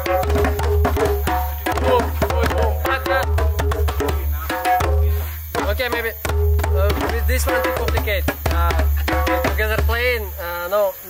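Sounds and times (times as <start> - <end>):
hand drums played in a group: 0.0 - 10.6
voices talking: 1.5 - 11.0.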